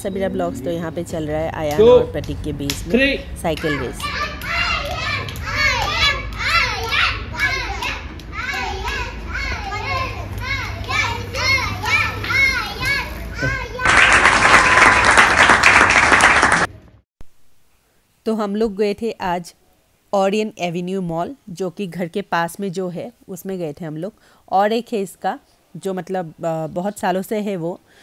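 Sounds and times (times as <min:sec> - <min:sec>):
children shouting and cheering: 0:03.6 - 0:15.2
dense clapping: 0:13.8 - 0:16.8.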